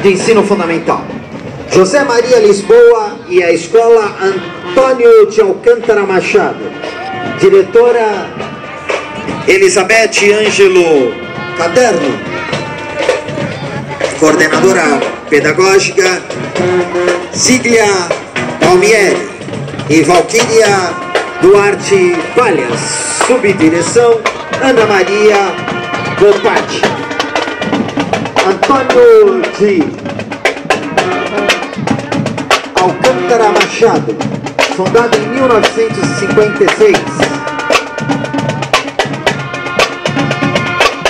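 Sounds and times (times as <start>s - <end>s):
faint drums: 0.0s - 41.0s
marching band playing: 0.0s - 41.0s
tuba and brass horns: 0.0s - 41.0s.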